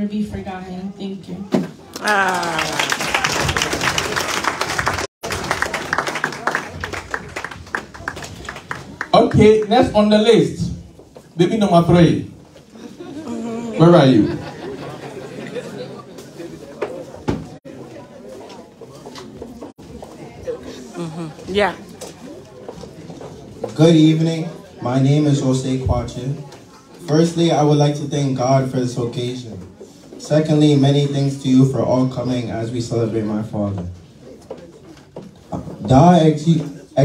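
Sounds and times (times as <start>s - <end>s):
murmur of voices: 5.9s - 37.0s
man speaking over a microphone: 9.1s - 10.8s, 13.7s - 14.5s, 23.7s - 26.4s.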